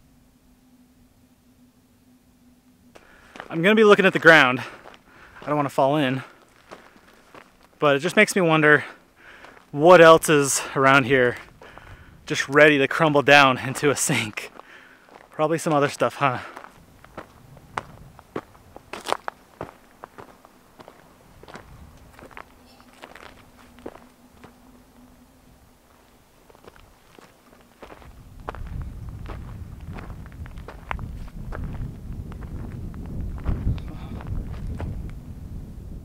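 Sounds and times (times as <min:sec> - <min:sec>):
footsteps on stony ground: 0:02.9 - 0:24.8, 0:25.8 - 0:35.1
wind rumbling on microphone: 0:10.9 - 0:12.6, 0:16.6 - 0:36.0.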